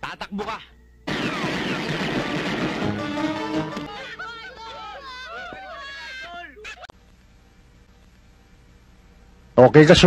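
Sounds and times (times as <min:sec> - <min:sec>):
crash with falling whooshes: 0:01.1 - 0:04.0
music: 0:01.8 - 0:04.1.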